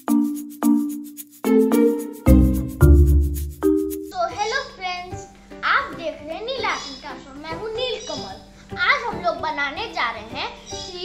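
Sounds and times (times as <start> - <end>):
boy speaking: 4.1 - 11.0.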